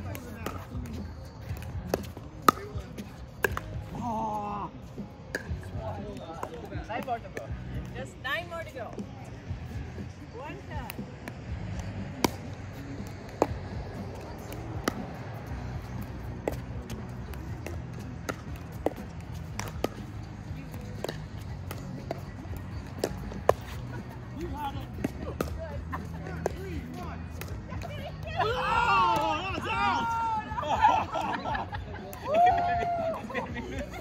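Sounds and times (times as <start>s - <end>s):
soft background music: 0.0s - 34.0s.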